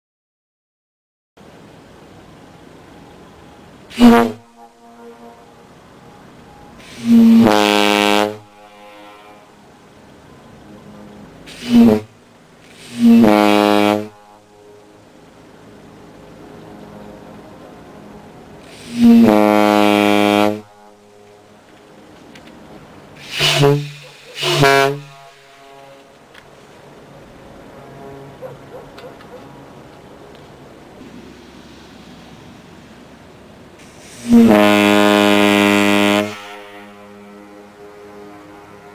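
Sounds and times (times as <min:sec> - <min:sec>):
ship horn blasts: 0:03.5 - 0:28.8, 0:33.8 - 0:38.9.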